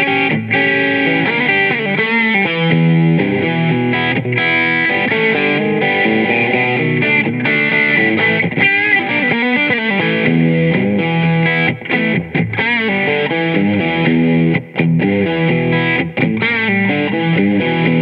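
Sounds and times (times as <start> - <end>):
electric guitar playing: 0.0 - 18.0.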